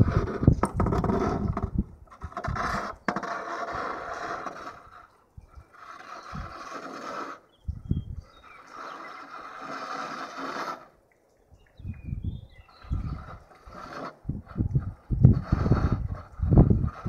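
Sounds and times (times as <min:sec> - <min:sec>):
wind gusts on microphone: 0:00.0 - 0:02.9, 0:04.7 - 0:06.6, 0:07.6 - 0:08.6, 0:11.5 - 0:17.0.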